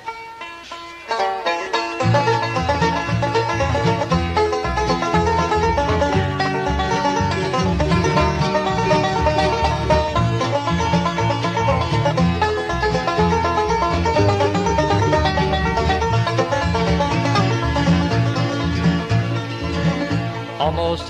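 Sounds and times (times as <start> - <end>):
banjo: 0.0 - 21.0
guitar: 0.0 - 21.0
upright bass: 1.1 - 21.0.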